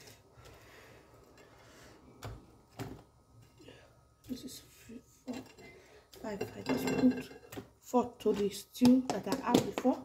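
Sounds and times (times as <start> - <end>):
faint room noise: 0.0 - 10.0.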